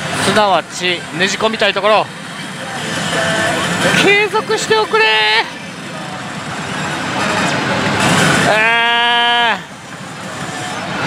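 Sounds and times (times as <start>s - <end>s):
gaming hall noise: 0.0s - 11.0s
man groaning: 8.5s - 9.7s.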